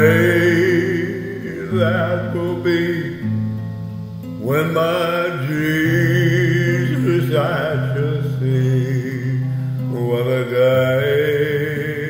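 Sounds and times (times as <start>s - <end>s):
man singing slow hymn: 0.0s - 3.5s, 4.2s - 12.0s.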